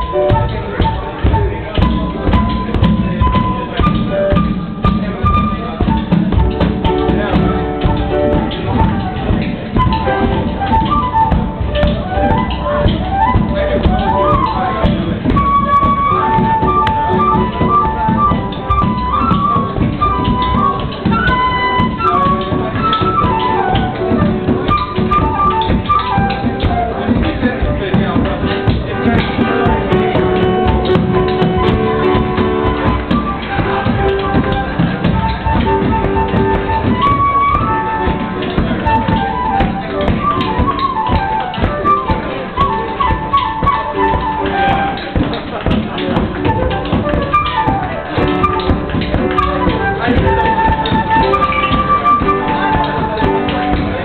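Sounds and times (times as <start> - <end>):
flute playing: 0.0 - 54.0
tap shoes on stage floor: 0.0 - 54.0.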